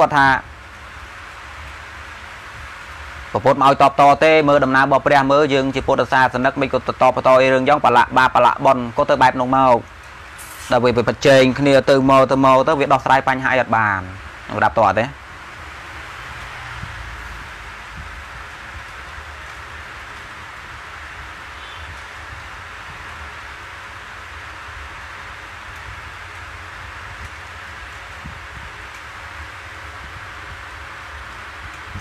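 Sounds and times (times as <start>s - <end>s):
steady hissing noise: 0.0s - 32.0s.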